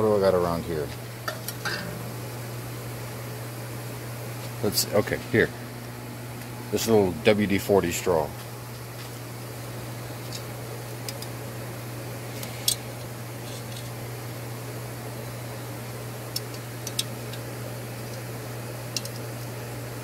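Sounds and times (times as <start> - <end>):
low machine hum: 0.0 - 20.0.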